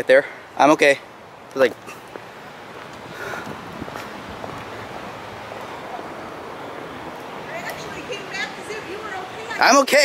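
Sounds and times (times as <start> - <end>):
wind on microphone: 2.9 - 8.2.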